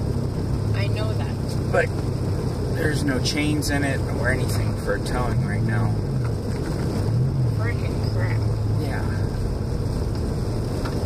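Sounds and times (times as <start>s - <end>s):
low engine hum: 0.0s - 11.0s
tyre and road noise: 0.0s - 11.0s.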